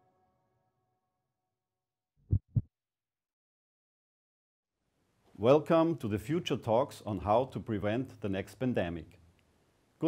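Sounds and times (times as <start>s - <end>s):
heartbeat thumps: 2.2s - 2.7s.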